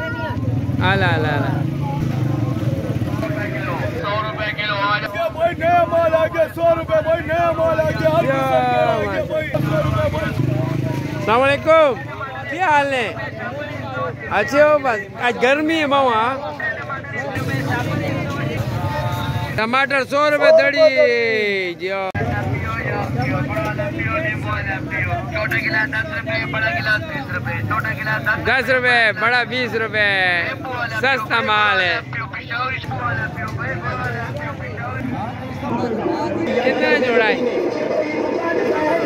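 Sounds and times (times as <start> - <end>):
man talking: 3.2 - 39.0
faint voices: 30.3 - 39.0
low rumbling noise: 34.8 - 39.0.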